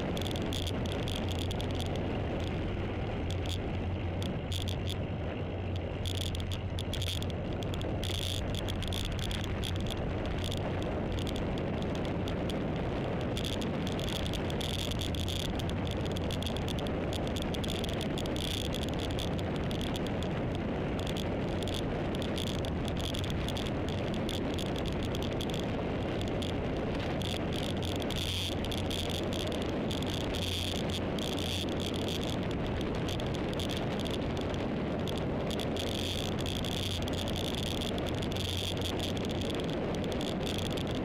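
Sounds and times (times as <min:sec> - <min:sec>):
low hum: 0:00.0 - 0:41.0
road and wind noise: 0:00.0 - 0:41.0.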